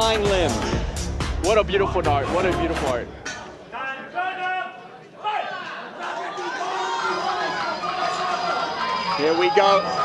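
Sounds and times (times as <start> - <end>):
music: 0.0 - 3.2.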